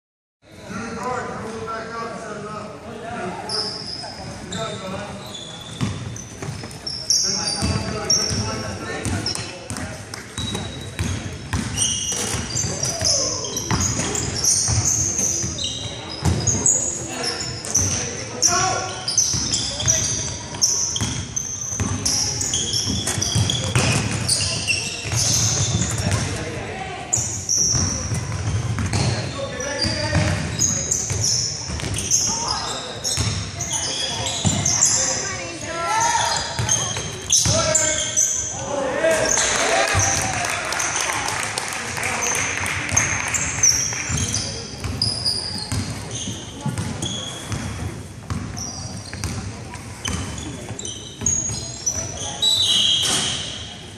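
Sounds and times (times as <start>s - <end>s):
voices echoing in hall: 0.5s - 53.9s
sneakers squeaking: 3.4s - 41.3s, 42.1s - 53.9s
basketball bouncing: 9.0s - 14.9s, 27.7s - 29.2s, 45.7s - 49.5s, 50.1s - 50.4s.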